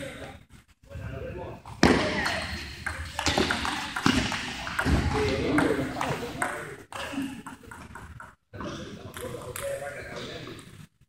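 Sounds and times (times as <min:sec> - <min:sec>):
people talking: 0:00.0 - 0:10.8.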